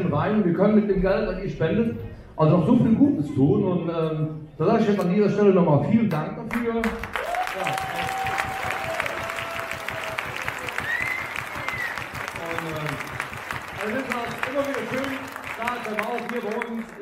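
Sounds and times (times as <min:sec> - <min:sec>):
audience applauding: 0:06.5 - 0:17.0.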